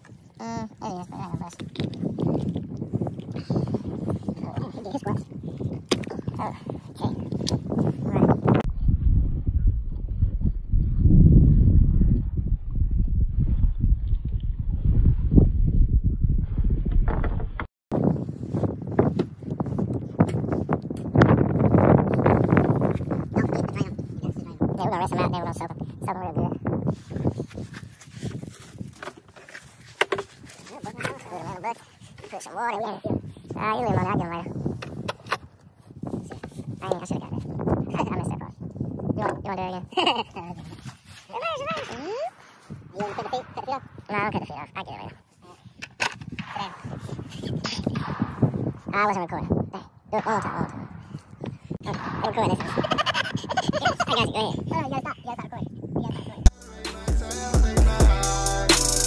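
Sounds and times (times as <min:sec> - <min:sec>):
indistinct voices talking: 0:56.0 - 0:59.0.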